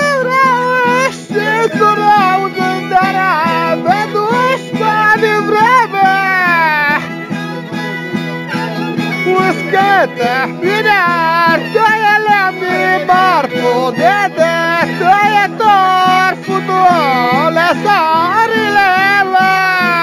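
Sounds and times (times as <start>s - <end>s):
fiddle playing high melody: 0.0s - 20.0s
strummed string instrument: 0.0s - 20.0s.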